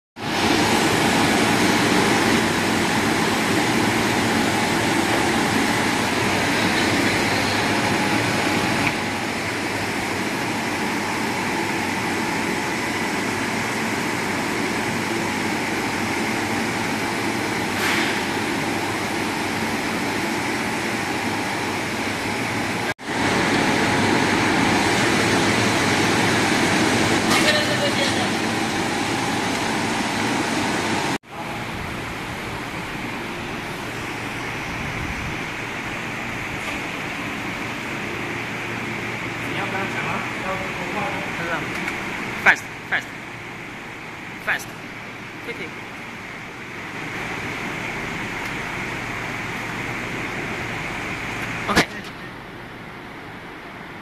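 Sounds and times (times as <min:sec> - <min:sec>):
ice lolly machine running: 0:00.2 - 0:42.6.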